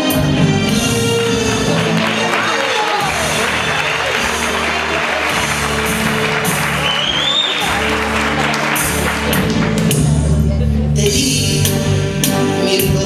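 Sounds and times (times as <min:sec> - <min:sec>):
instrumental song introduction: 0:00.0 - 0:13.0
audience applauding: 0:00.8 - 0:10.2.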